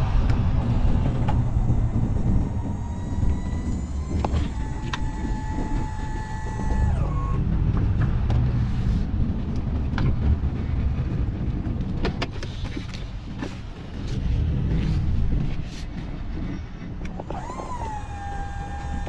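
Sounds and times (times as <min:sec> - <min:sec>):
truck engine rumble: 0:00.0 - 0:19.0.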